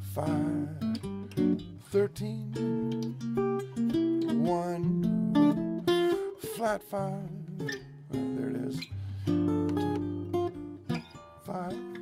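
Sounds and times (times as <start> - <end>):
jazz guitar fingerstyle: 0.0 - 12.0.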